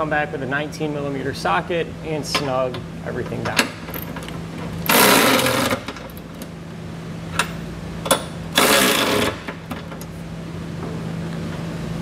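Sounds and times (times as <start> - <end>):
power ratchet running: 4.8 - 6.1, 8.5 - 9.7.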